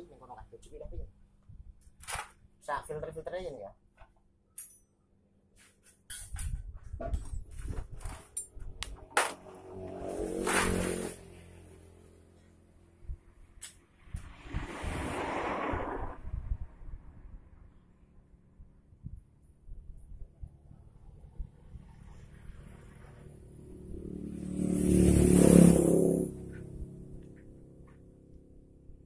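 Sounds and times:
metal hand tools clinking: 4.6s - 4.9s.

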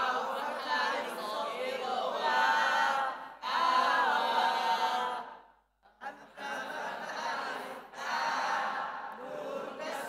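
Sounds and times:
group of voices reciting in chorus: 0.0s - 10.0s.

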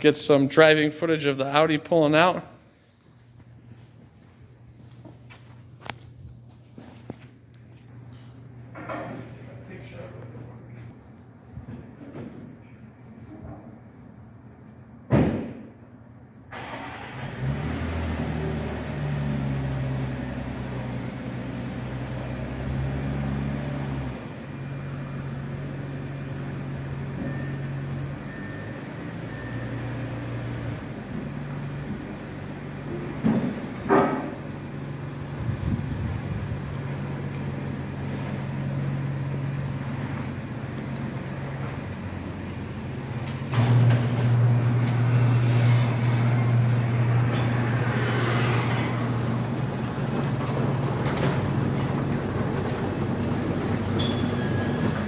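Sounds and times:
car engine starting and idling: 16.4s - 55.0s.

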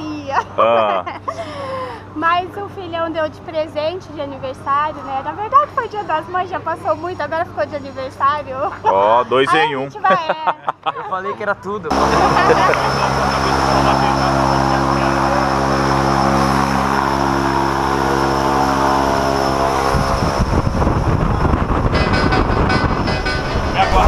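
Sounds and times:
propeller plane engine running: 11.9s - 24.0s
wind rushing through open door: 16.8s - 24.0s.

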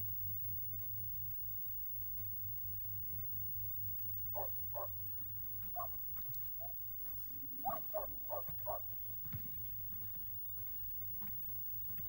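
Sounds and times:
dog barking: 4.4s - 4.9s, 7.6s - 8.8s.

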